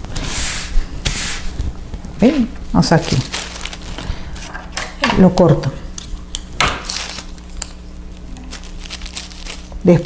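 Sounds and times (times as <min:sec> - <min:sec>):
tissue paper rustling: 0:02.8 - 0:04.2, 0:08.1 - 0:09.8.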